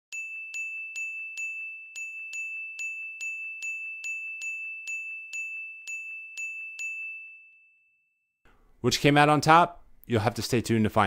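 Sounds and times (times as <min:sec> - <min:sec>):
high bell-like ding: 0:00.1 - 0:08.4
man speaking: 0:08.8 - 0:11.0.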